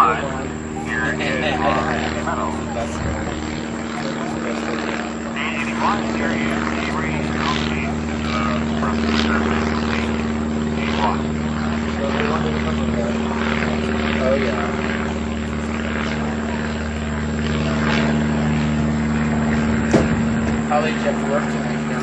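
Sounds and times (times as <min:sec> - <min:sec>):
faint indistinct voices: 0:00.0 - 0:22.0
motor drone: 0:00.0 - 0:22.0.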